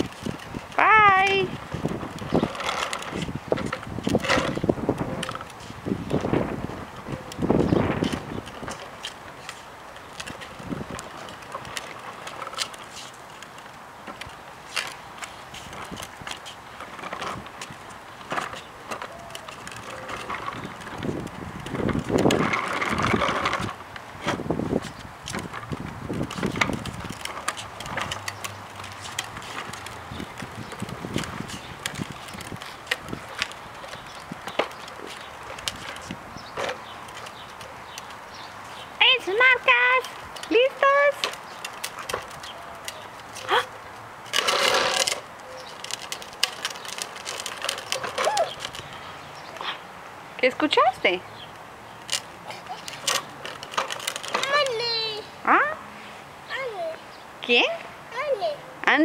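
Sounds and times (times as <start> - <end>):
plastic wheels rumbling on concrete: 0.0 - 55.8, 56.4 - 59.0.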